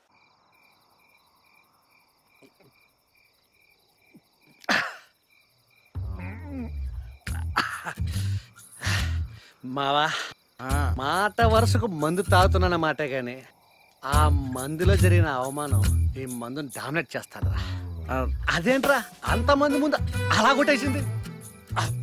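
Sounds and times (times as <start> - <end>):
crickets chirping: 0.0 - 22.0
short vocal sound: 6.0 - 9.3.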